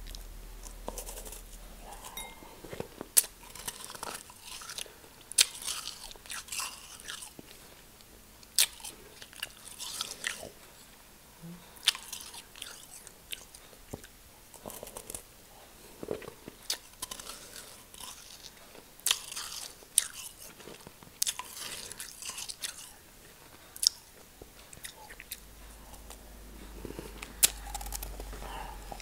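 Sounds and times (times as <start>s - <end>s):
crackly chewing of snow: 0.0s - 10.9s, 11.8s - 29.0s.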